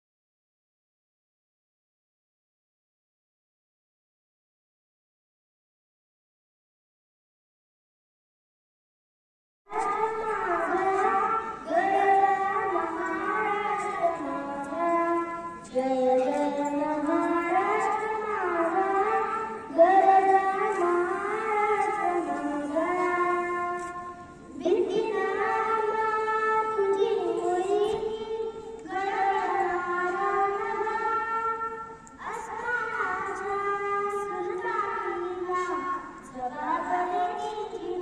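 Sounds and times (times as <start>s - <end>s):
girl singing into a microphone: 9.7s - 38.0s.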